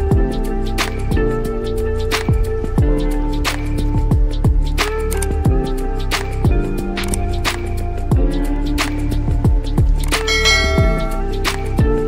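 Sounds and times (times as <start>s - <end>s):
music with deep drum hits: 9.4s - 12.0s
ringing bell chime: 10.3s - 11.2s.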